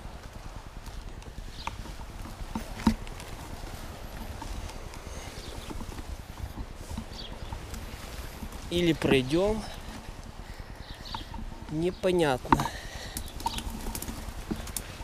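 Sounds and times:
stroller knocks and rattles: 0:00.0 - 0:09.6
stroller wheels rumbling on dirt: 0:00.0 - 0:15.0.

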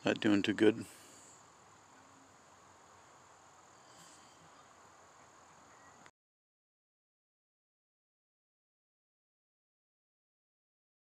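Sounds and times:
faint insect drone: 0:00.0 - 0:06.1.

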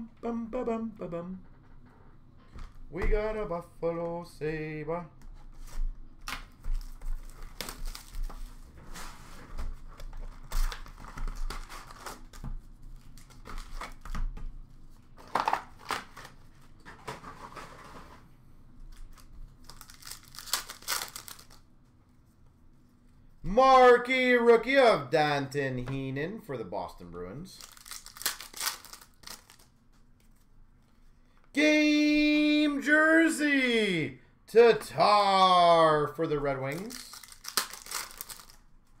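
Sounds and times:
wrappers tearing and crinkling: 0:06.8 - 0:08.7, 0:10.0 - 0:12.4, 0:19.1 - 0:21.6, 0:27.6 - 0:29.8, 0:36.6 - 0:38.7.

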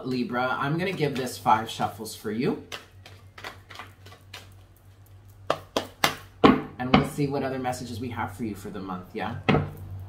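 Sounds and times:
cards being shuffled: 0:02.6 - 0:06.3.

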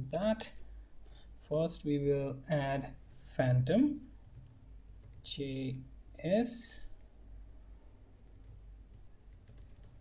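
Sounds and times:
steady background hiss: 0:00.0 - 0:10.0
computer keyboard typing: 0:04.2 - 0:05.2, 0:08.2 - 0:10.0.

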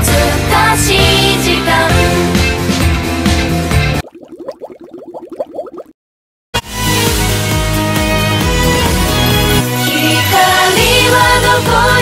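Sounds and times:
rising bubbly electronic blips: 0:04.0 - 0:06.0.

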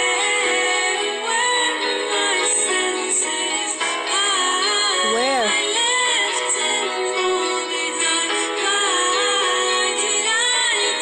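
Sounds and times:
pop song: 0:00.0 - 0:11.0
woman singing: 0:00.0 - 0:11.0.

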